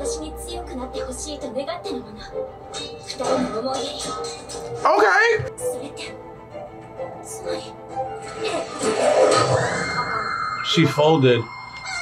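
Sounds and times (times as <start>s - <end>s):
soundtrack music: 0.0s - 12.0s.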